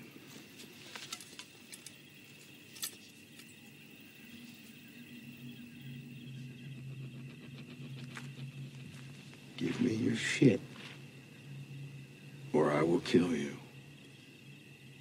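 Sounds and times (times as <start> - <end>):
insect chirring: 0.0 - 15.0
low steady drone: 0.0 - 15.0.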